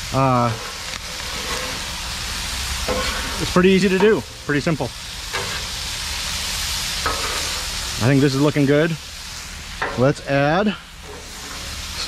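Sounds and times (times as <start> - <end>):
food sizzling on a griddle: 0.0 - 12.0.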